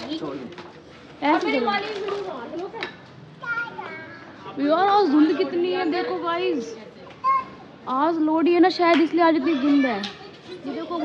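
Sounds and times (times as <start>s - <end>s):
children chattering and calling: 1.2s - 11.0s.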